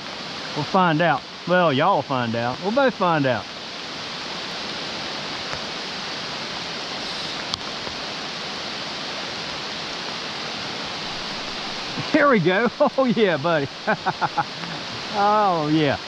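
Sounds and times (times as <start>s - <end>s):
rain falling on water: 0.0s - 16.0s
stream rushing over stones: 0.0s - 16.0s.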